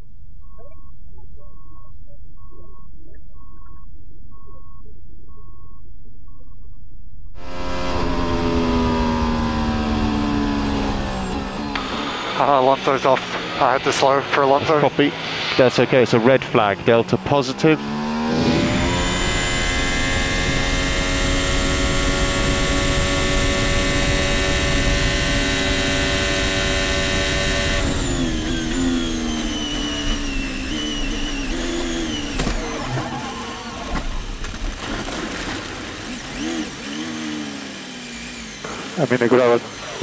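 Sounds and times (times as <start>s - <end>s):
race car engine note wavering: 7.3s - 34.4s
race car engine at high revs: 7.4s - 40.0s.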